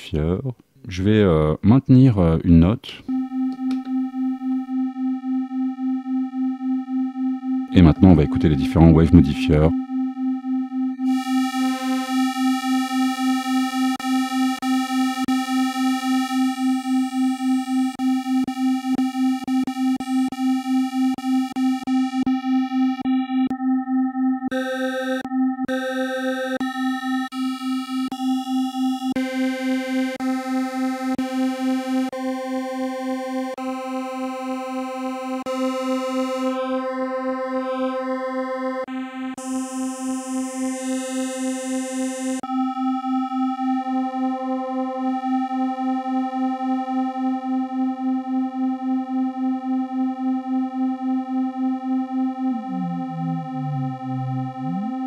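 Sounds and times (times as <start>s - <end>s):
synthesizer sustained note: 7.6s - 13.6s, 51.9s - 55.0s.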